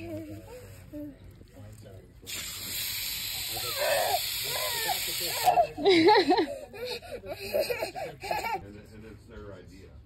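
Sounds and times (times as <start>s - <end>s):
lawn sprinkler spray hissing: 2.3s - 5.6s.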